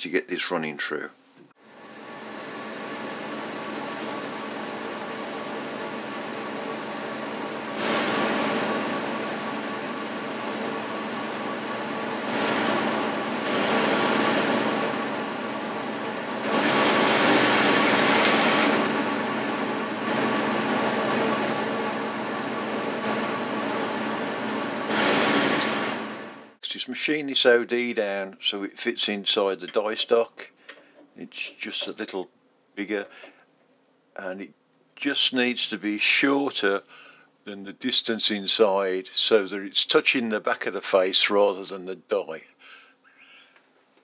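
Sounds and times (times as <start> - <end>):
metal lathe motor hum: 1.6 - 26.6
lathe tool cutting hiss: 2.0 - 26.6.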